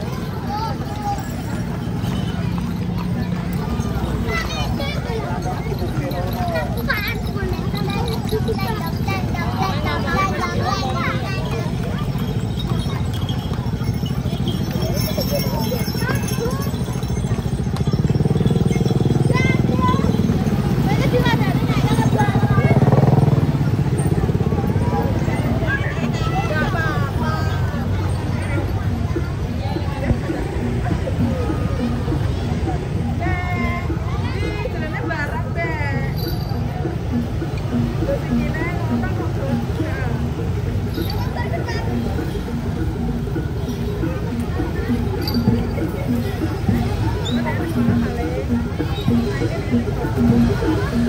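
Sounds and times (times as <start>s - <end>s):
chatter of voices: 0.0s - 51.0s
hooves clip-clopping on pavement: 0.0s - 51.0s
people talking and calling out: 0.0s - 51.0s
motor scooter engine running: 11.7s - 26.5s.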